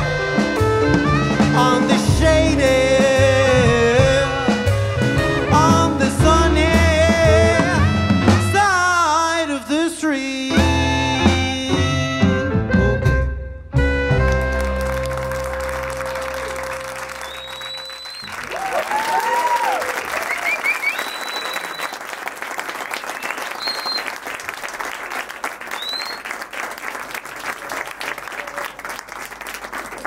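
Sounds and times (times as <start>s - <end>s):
jazz band playing: 0.0s - 9.4s, 10.4s - 18.0s
audience applause: 14.2s - 30.0s
cheering: 14.3s - 30.0s
whistles from audience: 16.2s - 22.1s, 23.0s - 24.3s, 25.6s - 26.4s.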